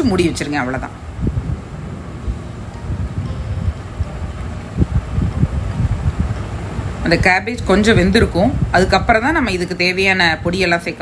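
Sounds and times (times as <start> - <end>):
gas burner flame rumbling: 0.0 - 11.0.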